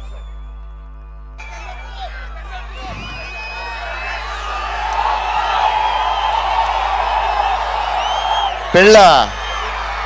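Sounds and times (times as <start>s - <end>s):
crowd cheering and whooping: 1.4s - 10.0s.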